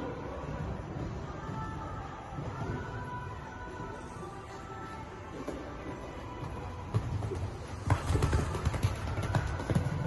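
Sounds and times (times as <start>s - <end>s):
background music: 0.0s - 10.0s
horse hoofbeats on sand: 5.4s - 10.0s.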